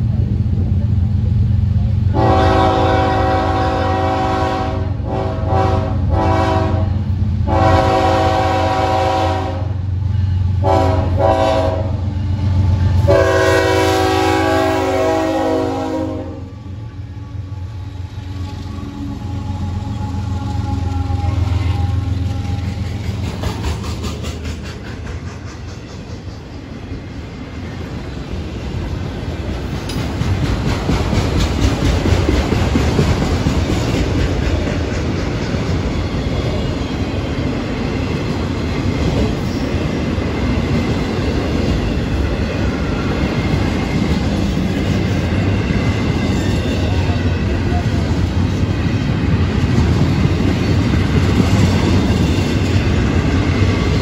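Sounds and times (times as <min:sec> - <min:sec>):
locomotive engines rumbling: 0:00.0 - 0:54.0
train horn: 0:02.1 - 0:23.0
wheels clacking over rail joints: 0:18.4 - 0:54.0.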